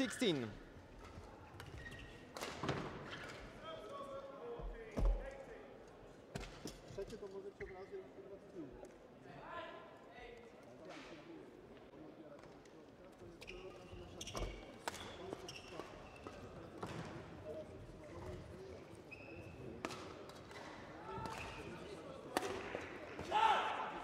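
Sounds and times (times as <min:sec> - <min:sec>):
shoe squeaks on court floor: 0:01.6 - 0:02.4, 0:13.4 - 0:16.8, 0:19.0 - 0:19.8.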